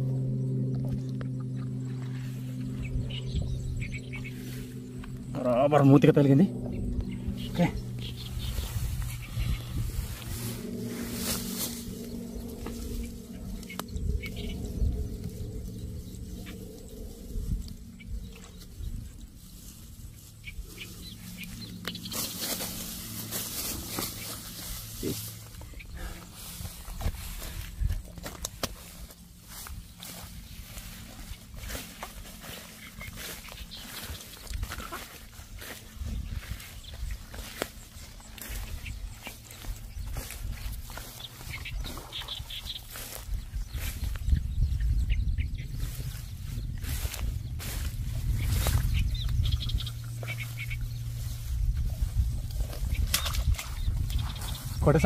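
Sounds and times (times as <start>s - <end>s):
low steady hum: 0.0s - 55.0s
tall grass rustling and crackling: 1.0s - 55.0s.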